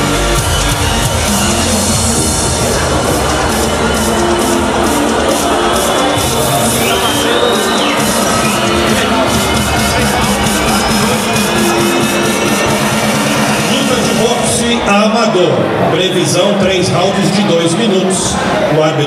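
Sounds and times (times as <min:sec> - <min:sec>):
electronic dance music: 0:00.0 - 0:19.0.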